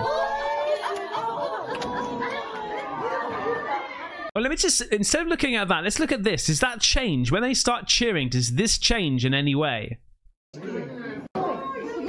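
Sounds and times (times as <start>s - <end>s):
people chattering excitedly: 10.6s - 12.0s.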